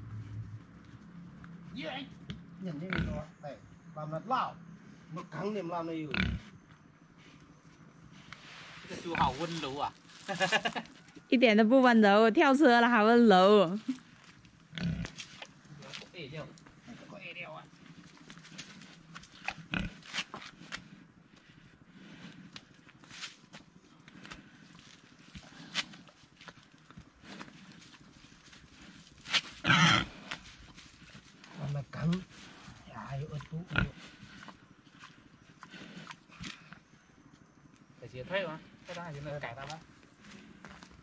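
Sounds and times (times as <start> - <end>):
pig grunting: 2.7 - 3.4, 5.9 - 6.6, 8.8 - 9.6, 14.7 - 15.9, 16.8 - 22.8, 27.1 - 30.5, 31.3 - 36.9
pig crying: 29.6 - 30.3.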